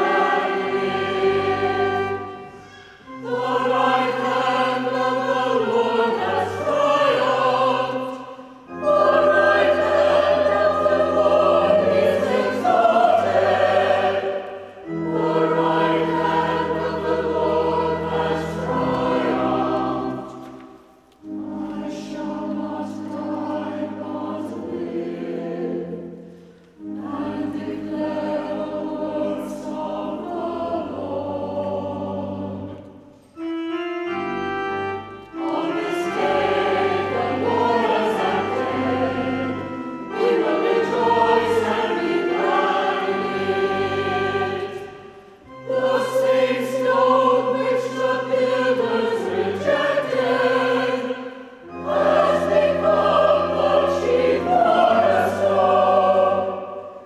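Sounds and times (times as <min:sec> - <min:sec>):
church choir singing: 0:00.0 - 0:57.0.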